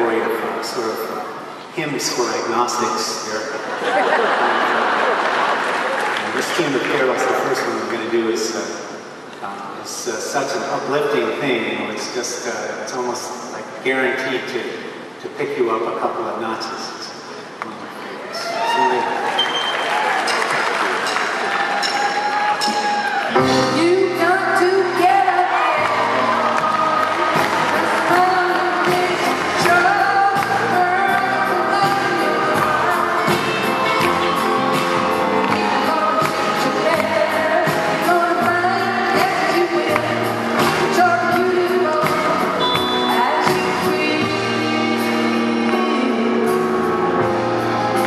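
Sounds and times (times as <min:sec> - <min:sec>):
audience applauding: 0:03.8 - 0:08.2, 0:18.6 - 0:23.5, 0:25.2 - 0:41.4
grand piano: 0:20.2 - 0:48.0
woman singing: 0:23.5 - 0:46.9
band with steady beat: 0:25.9 - 0:48.0.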